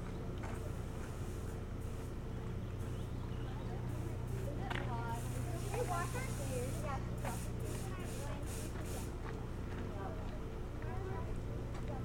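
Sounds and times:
distant people talking: 0.0 - 12.0
steady low hum: 0.0 - 12.0.

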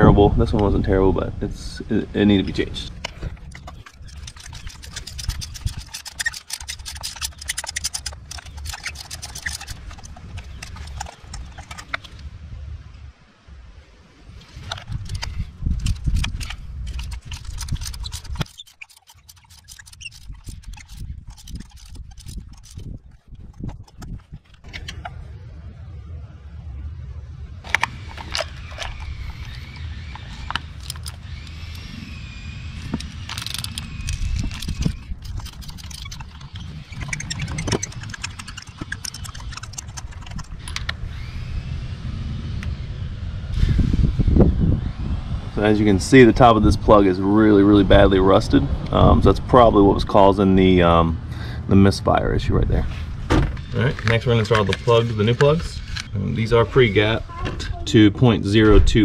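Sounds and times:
metal hand tools clicking: 3.5 - 12.1, 15.0 - 24.2, 27.7 - 31.8, 32.8 - 40.9
low rumble: 20.3 - 38.0.

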